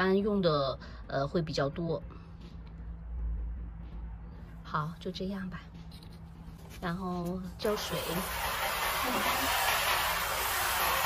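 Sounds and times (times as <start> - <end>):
hose spraying water into tub: 7.6 - 11.0.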